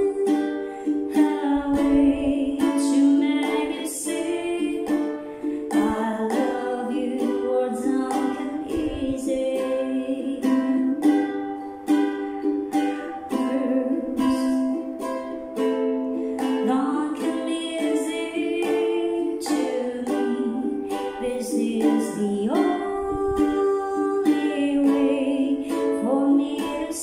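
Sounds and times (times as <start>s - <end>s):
ukulele strumming chords: 0.0s - 27.0s.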